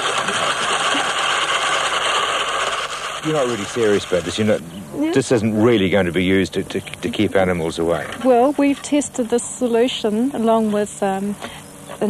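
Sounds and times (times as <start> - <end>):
rotary egg beater whirring: 0.0 - 5.9.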